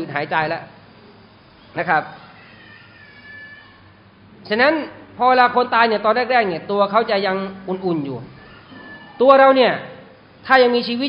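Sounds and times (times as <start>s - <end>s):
faint high-pitched cry: 1.5s - 4.1s, 7.8s - 9.5s.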